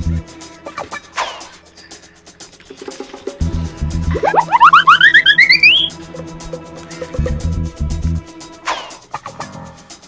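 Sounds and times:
children's background music: 0.0 - 10.0
rising cartoon chirping notes: 4.1 - 6.0.

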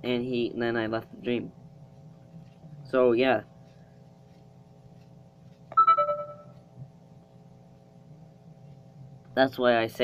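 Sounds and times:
faint steady hum: 0.0 - 10.0
two-tone electronic chime: 5.8 - 6.6.

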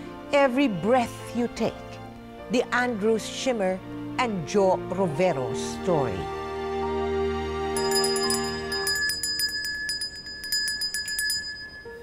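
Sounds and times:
handbell ringing: 7.8 - 12.0.

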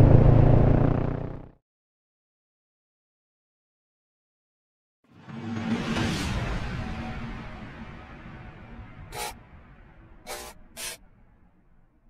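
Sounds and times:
motorcycle engine running: 0.0 - 1.6.

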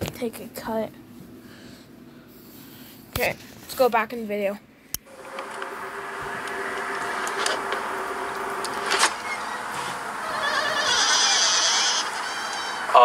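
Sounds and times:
steady hum: 4.7 - 13.0.

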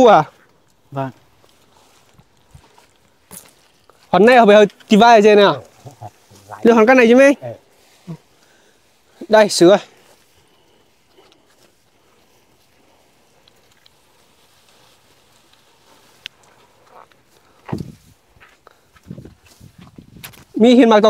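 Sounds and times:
grass rustling being cut: 1.2 - 20.6.

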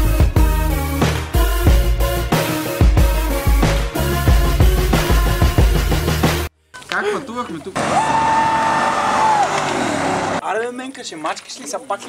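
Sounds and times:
car engine at high revs: 7.8 - 10.4.

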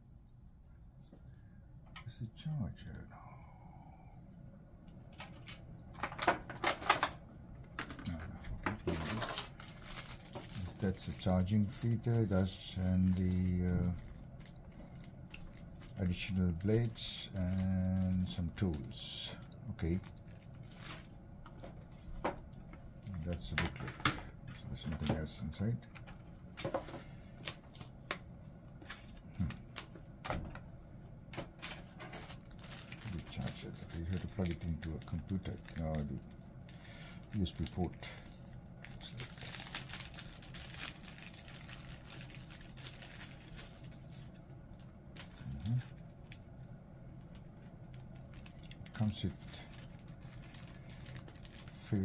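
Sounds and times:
plastic parts clicking and knocking: 5.2 - 10.6
plastic packaging rustling: 5.2 - 22.4, 31.4 - 46.6, 47.2 - 52.0.

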